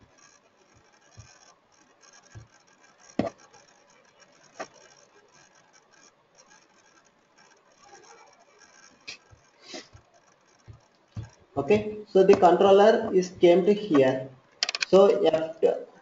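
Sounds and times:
low background hiss: 0:00.0 - 0:16.0
short clicks and knocks: 0:14.6 - 0:15.2.

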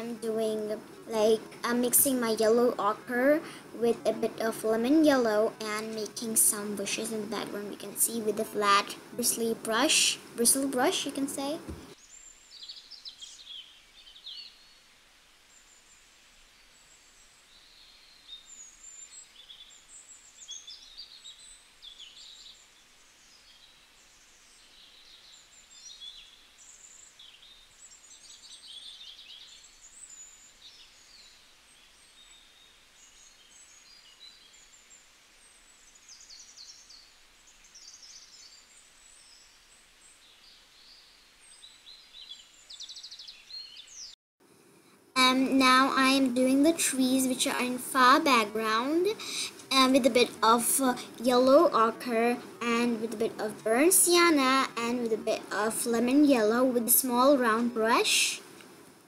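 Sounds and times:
small birds chirping: 0:00.0 - 0:44.2, 0:45.2 - 0:58.6
low steady hiss: 0:00.0 - 0:59.0.

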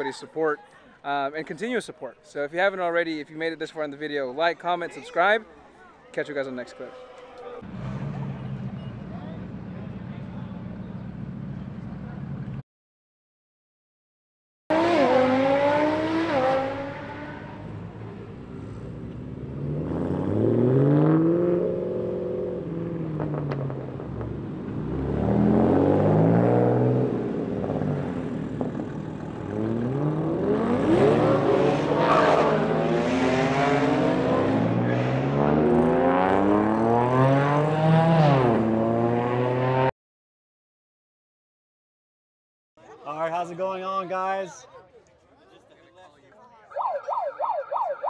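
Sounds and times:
car engines revving: 0:07.6 - 0:12.6, 0:14.7 - 0:39.9.

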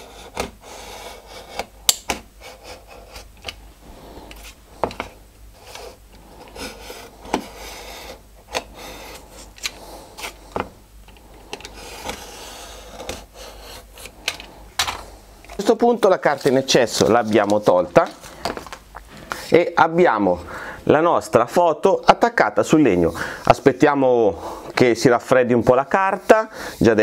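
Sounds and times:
utility knife scraping wood: 0:00.0 - 0:03.6, 0:04.3 - 0:10.7, 0:11.6 - 0:14.2.

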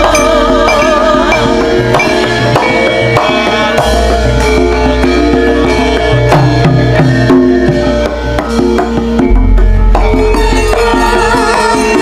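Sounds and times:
hand drum strokes: 0:00.0 - 0:12.0
ringing metallophone notes: 0:00.0 - 0:12.0
deep low note: 0:09.3 - 0:11.1.

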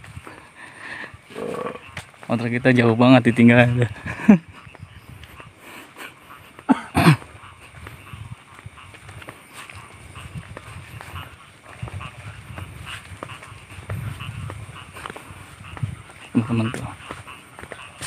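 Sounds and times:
footsteps on grass: 0:00.0 - 0:18.0.

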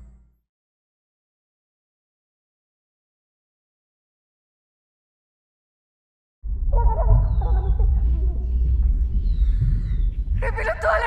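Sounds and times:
deep steady rumble: 0:06.4 - 0:11.0.

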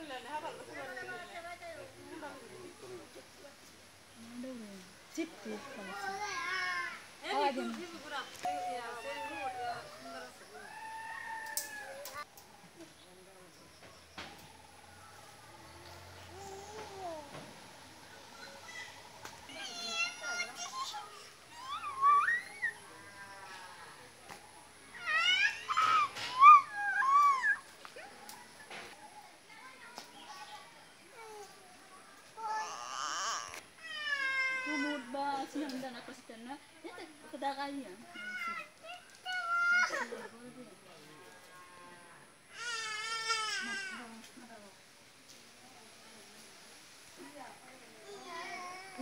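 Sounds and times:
rooster crowing: 0:10.1 - 0:12.0
baby crying: 0:32.4 - 0:34.9.

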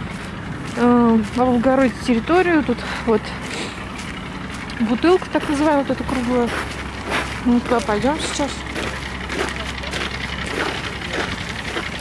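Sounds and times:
steady low rumble: 0:00.0 - 0:12.0
faint indistinct voices: 0:00.2 - 0:12.0.

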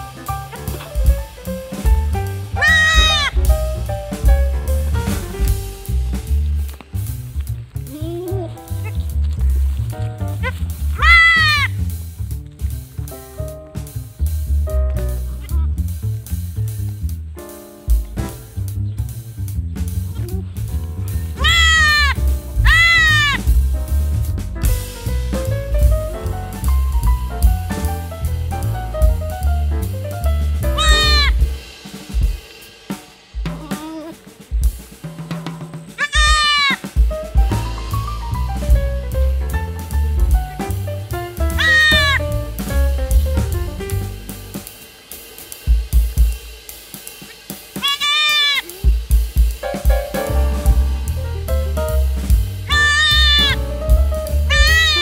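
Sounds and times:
goat bleating: 0:02.6 - 0:03.4, 0:10.4 - 0:11.8, 0:15.3 - 0:15.7, 0:21.4 - 0:23.5, 0:30.8 - 0:31.4, 0:33.5 - 0:34.3, 0:36.0 - 0:36.9, 0:41.5 - 0:42.2, 0:47.8 - 0:49.0, 0:52.6 - 0:53.6, 0:54.5 - 0:55.0
background music with steady beat: 0:22.2 - 0:47.8, 0:48.9 - 0:52.7.

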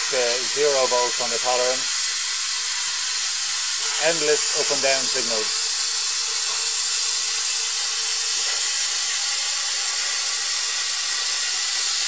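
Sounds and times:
plasma torch hissing: 0:00.0 - 0:12.0.

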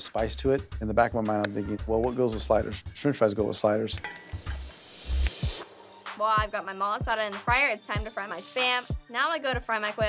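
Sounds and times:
meat sizzling in a frying pan: 0:04.3 - 0:05.6, 0:08.1 - 0:09.0.

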